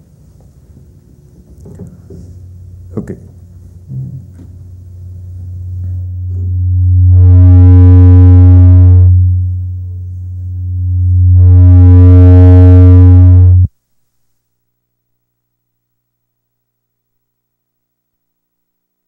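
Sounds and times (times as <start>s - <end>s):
loud electrical hum: 0.0s - 13.8s.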